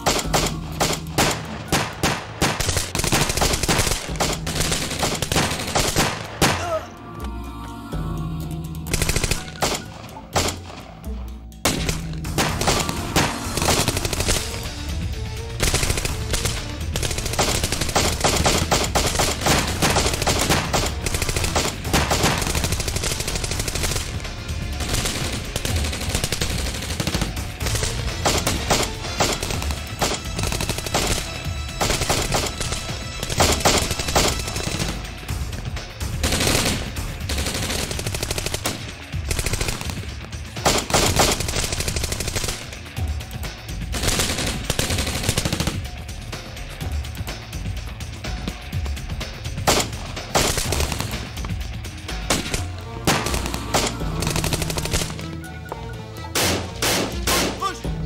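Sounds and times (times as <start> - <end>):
gunfire bursts: 0.0 - 6.8, 8.9 - 11.0, 11.6 - 14.9, 15.5 - 35.3, 36.2 - 43.0, 43.9 - 46.0, 49.6 - 51.4, 52.2 - 55.4, 56.4 - 57.8.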